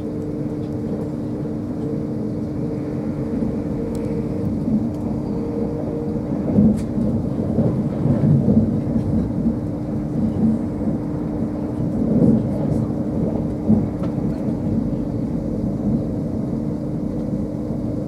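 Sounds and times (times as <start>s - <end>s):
train cabin hum: 0.0s - 18.0s
train wheels rumbling on rail: 0.0s - 18.0s.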